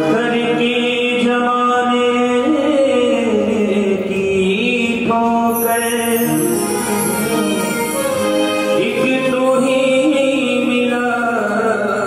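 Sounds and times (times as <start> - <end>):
devotional chanting voice: 0.0 - 7.8, 8.8 - 12.0.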